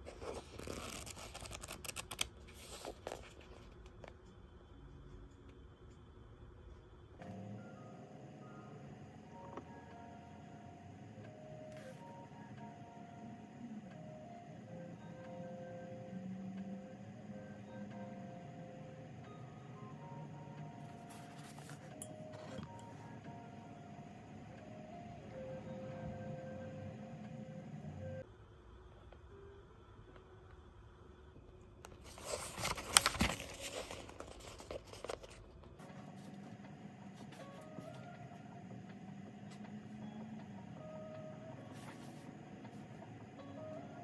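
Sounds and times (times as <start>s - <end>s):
pages rustled and flicked: 0.0s - 3.8s, 21.1s - 22.7s, 32.0s - 35.4s
soft calm background music: 0.0s - 44.0s.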